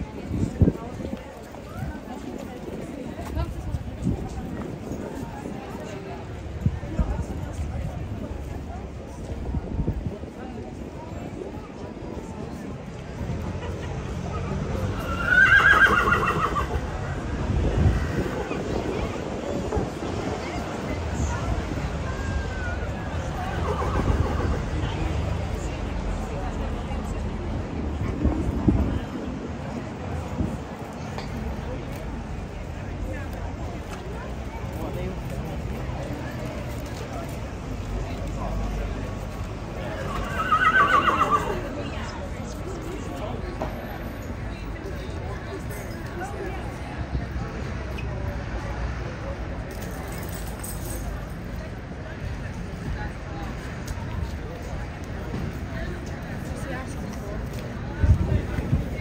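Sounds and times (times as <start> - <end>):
horse whinnying: 15.0 - 16.8, 23.6 - 24.6, 40.0 - 41.6.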